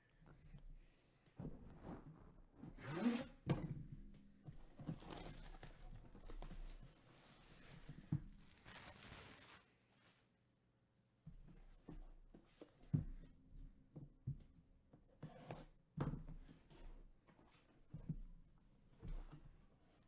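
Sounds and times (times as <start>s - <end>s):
cardboard rustling and scraping: 4.9s - 10.2s.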